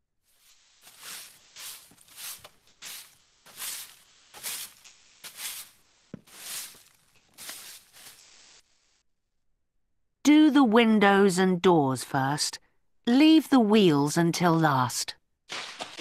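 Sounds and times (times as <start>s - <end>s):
broom sweeping leaves: 0.2s - 8.7s.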